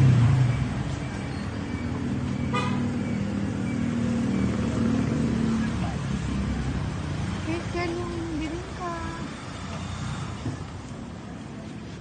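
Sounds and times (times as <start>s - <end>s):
vehicle engine running: 0.0s - 12.0s
car horn toot: 2.5s - 2.9s.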